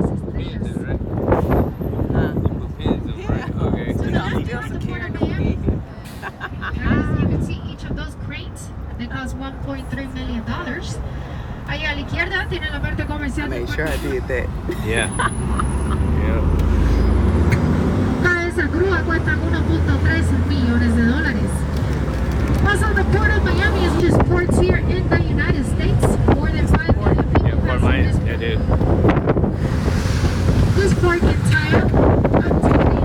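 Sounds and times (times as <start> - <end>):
vehicle engine rumbling: 0.0 - 33.0
wind buffeting microphone: 0.0 - 33.0
indistinct voices: 2.1 - 21.8, 22.6 - 28.8.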